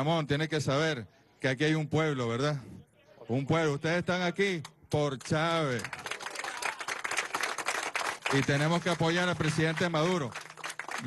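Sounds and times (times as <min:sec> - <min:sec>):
people clapping: 0:05.1 - 0:11.0.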